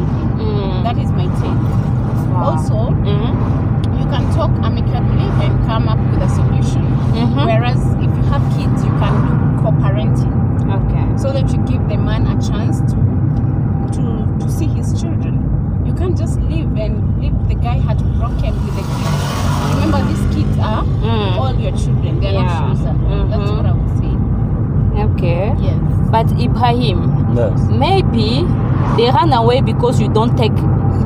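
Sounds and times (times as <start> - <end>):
car driving rumble: 0.0 - 31.0
people talking: 0.4 - 1.6, 2.3 - 12.9, 13.9 - 24.2, 25.0 - 31.0.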